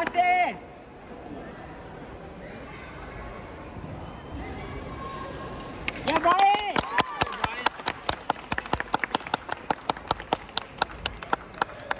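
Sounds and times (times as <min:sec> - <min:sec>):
small audience clapping: 0:05.8 - 0:11.9.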